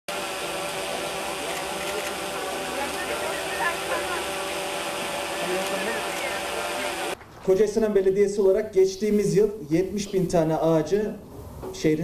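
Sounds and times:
steady outdoor rushing noise: 0.1 - 7.2
faint crowd murmur: 0.6 - 7.2.

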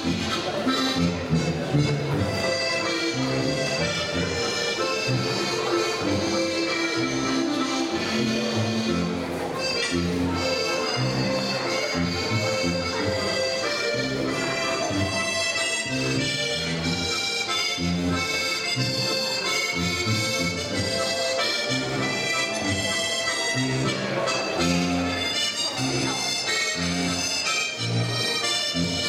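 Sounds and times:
folk dance music with accordion: 0.0 - 29.0.

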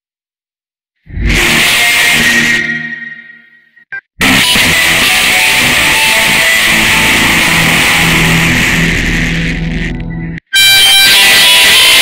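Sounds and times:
distorted noisy blast: 1.1 - 3.6, 4.2 - 12.0.

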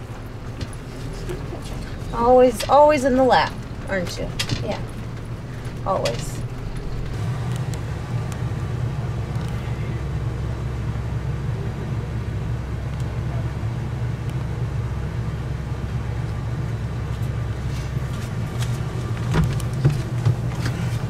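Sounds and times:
engine low rumble: 0.0 - 21.0.

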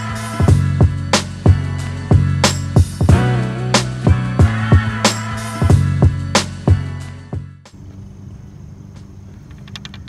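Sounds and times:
light outdoor noise: 7.7 - 10.0
small sharp clicks: 9.0 - 10.0.

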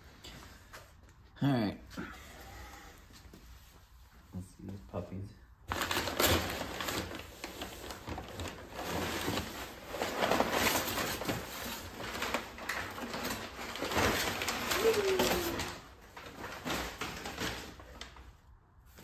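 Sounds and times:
packing paper crinkling: 5.7 - 18.4.

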